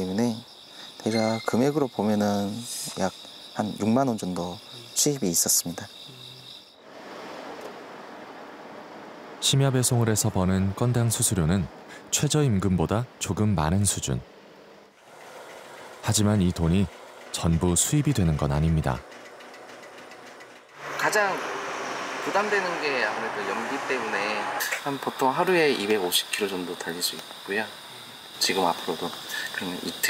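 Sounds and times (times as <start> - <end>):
car road noise hiss: 4.2 - 12.4, 13.9 - 30.0
fuel pump humming: 15.0 - 20.8, 24.6 - 30.0.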